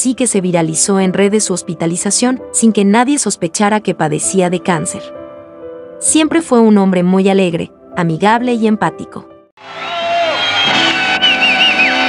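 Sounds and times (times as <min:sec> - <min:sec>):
audience cheering and applauding: 0:09.6 - 0:12.0
warbling whistle: 0:09.7 - 0:12.0.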